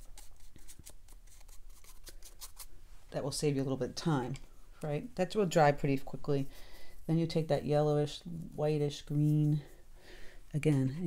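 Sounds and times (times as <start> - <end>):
paintbrush strokes on paper: 5.8 - 9.9.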